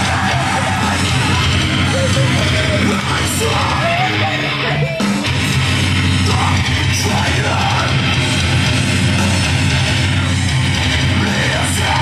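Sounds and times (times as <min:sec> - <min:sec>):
rock song with yelled vocals: 0:00.0 - 0:12.0.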